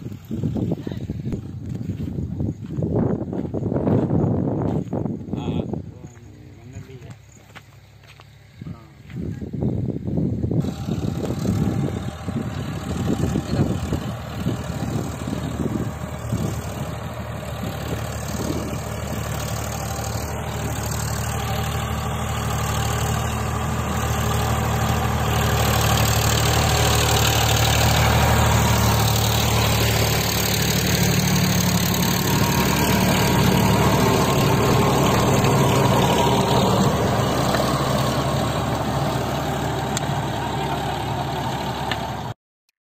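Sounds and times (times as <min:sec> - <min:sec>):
tractor diesel engine running: 0:00.0 - 0:42.4.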